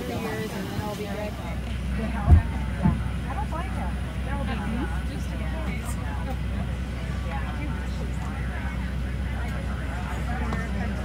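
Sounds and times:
airliner cabin hum: 0.0s - 11.0s
passengers chattering: 0.0s - 11.0s.

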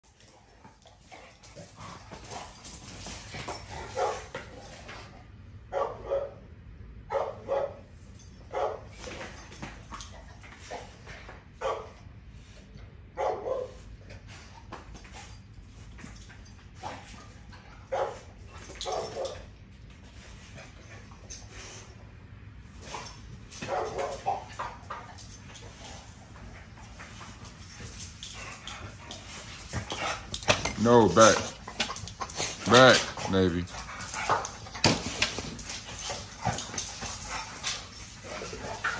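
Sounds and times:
dogs barking and yipping: 0.0s - 4.8s, 16.8s - 19.5s, 22.9s - 26.0s, 27.2s - 38.9s.

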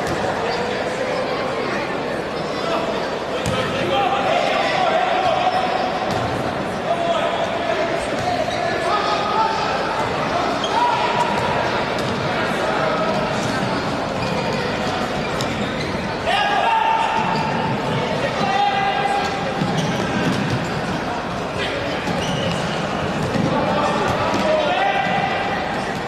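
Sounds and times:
crowd voices: 0.0s - 26.0s
people shouting: 16.3s - 17.5s.

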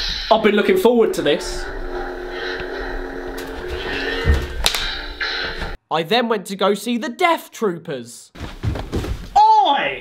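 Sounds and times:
lightsaber hum: 0.0s - 5.8s.

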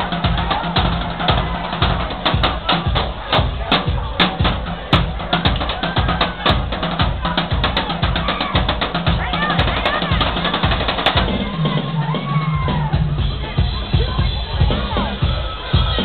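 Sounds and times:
snare and cymbal hits: 0.0s - 12.2s
kick drum beat: 0.0s - 16.0s
live band music: 0.0s - 16.0s
voices singing: 0.0s - 16.0s.

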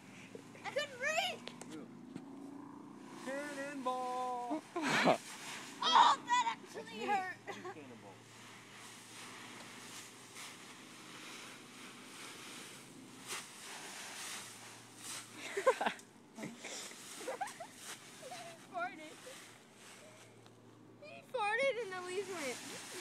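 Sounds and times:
dry leaves rustling and crackling: 3.0s - 7.0s, 8.1s - 20.5s, 21.8s - 23.0s.

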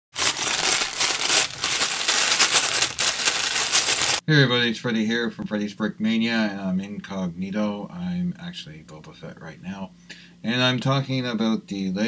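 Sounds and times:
dense crunching and rattling: 0.1s - 4.2s.

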